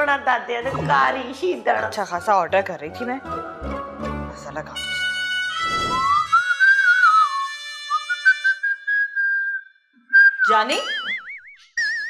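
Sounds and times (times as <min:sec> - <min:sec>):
whistle-like gliding melody: 0:04.8 - 0:12.0.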